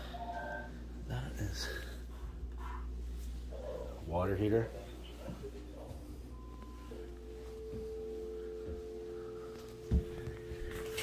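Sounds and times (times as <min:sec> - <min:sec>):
electrical hum of two tones: 0:04.8 - 0:11.0.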